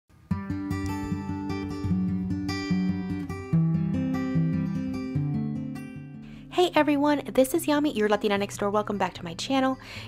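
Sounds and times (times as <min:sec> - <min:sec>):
acoustic guitar run: 0:00.1 - 0:10.0.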